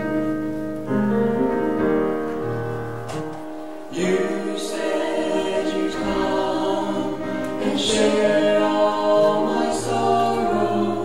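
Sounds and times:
piano: 0:00.0 - 0:11.0
man and woman singing gospel: 0:03.9 - 0:11.0.

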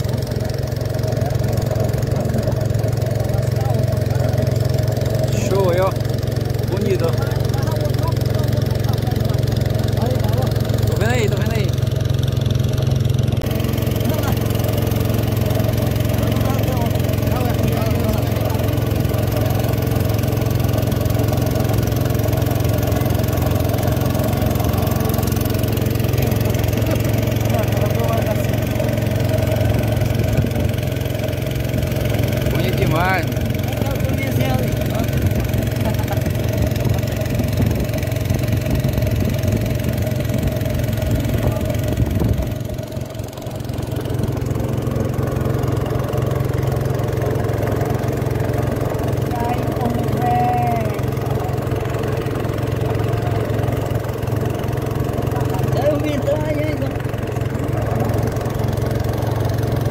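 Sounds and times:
boat engine droning: 0:00.0 - 0:59.9.

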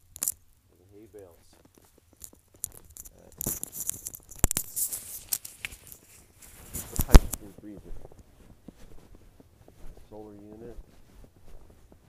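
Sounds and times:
footsteps crunching in snow: 0:00.7 - 0:12.0.

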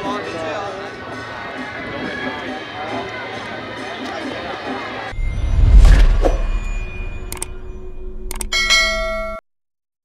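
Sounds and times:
low whooshing rumble: 0:05.1 - 0:08.3
bright bell ding: 0:06.2 - 0:09.4
sharp clicks: 0:07.3 - 0:07.6, 0:08.3 - 0:08.5.

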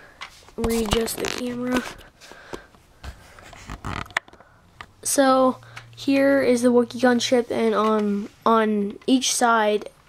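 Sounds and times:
camera handling rustles and bumps: 0:00.2 - 0:04.4.

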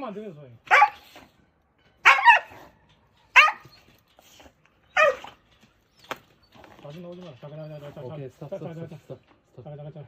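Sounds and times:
dog barking aggressively: 0:00.6 - 0:01.3, 0:02.0 - 0:03.8, 0:05.0 - 0:05.4.

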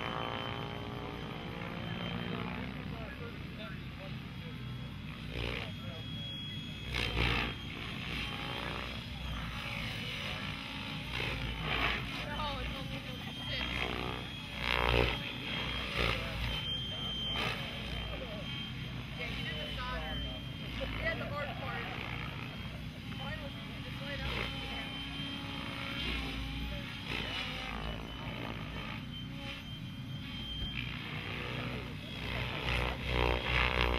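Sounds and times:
rc helicopter rotor drone: 0:00.0 - 0:33.9
people talking: 0:05.4 - 0:07.0, 0:12.1 - 0:14.2, 0:15.2 - 0:25.2.

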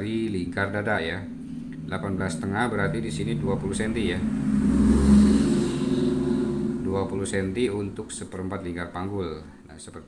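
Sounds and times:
vehicle engine hum passing: 0:00.0 - 0:08.9.

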